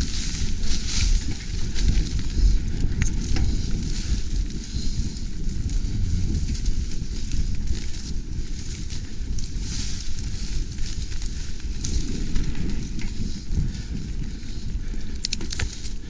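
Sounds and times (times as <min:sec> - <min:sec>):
bike tyres rumbling on dirt: 0:00.0 - 0:16.0
grass brushing handlebars: 0:00.0 - 0:16.0.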